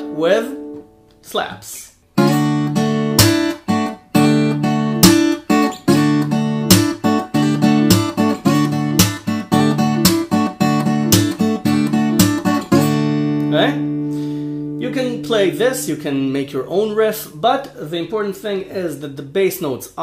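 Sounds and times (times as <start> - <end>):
fingerstyle acoustic guitar: 2.1 - 15.7.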